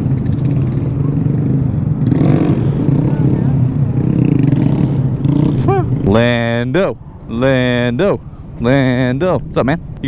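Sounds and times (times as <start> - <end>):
motorcycle engine idling: 0.0 - 6.2.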